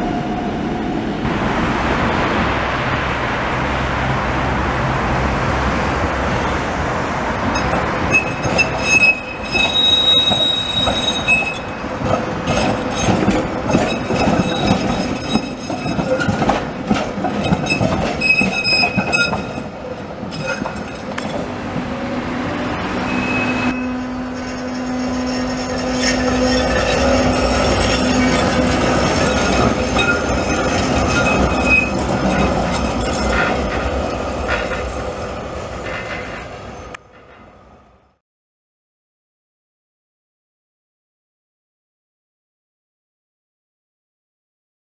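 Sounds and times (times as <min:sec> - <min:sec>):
tram wheels rumbling over rails: 0:00.0 - 0:38.2
high-pitched wheel squeals: 0:08.1 - 0:11.9, 0:17.4 - 0:19.7, 0:23.0 - 0:33.6.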